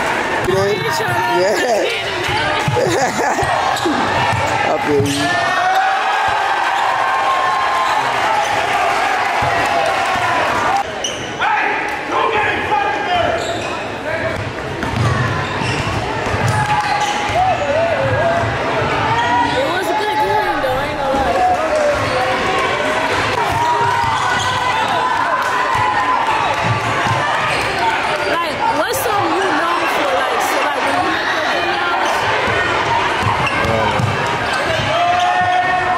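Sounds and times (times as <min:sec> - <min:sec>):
crowd and player voices: 0:00.0 - 0:35.9
sneakers squeaking: 0:01.9 - 0:05.4, 0:10.8 - 0:11.4, 0:13.2 - 0:18.5, 0:23.3 - 0:25.0, 0:30.6 - 0:35.7
echoing voices: 0:26.7 - 0:35.9.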